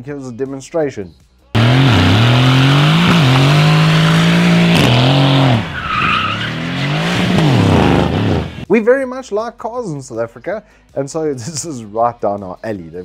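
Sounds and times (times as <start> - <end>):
car engine revving: 1.6 - 8.6
tyres screeching: 1.6 - 8.6.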